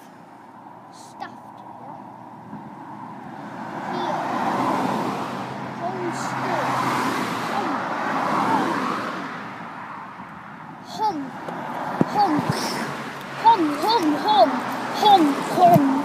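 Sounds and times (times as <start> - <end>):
car driving past: 2.8 - 10.2.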